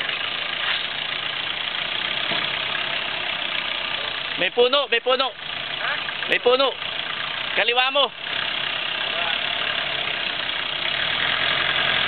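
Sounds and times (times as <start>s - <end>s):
engine running at low revs: 0.0s - 12.0s.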